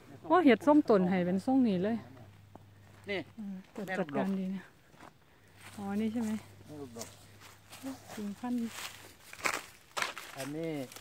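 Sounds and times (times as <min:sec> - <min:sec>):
footsteps crunching on dry leaves: 0:02.8 - 0:11.0.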